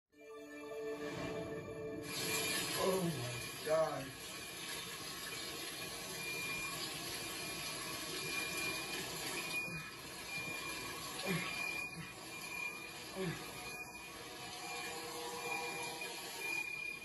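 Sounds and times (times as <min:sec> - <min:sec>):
rushing water: 0:02.0 - 0:12.6
faint high beep: 0:07.4 - 0:17.0.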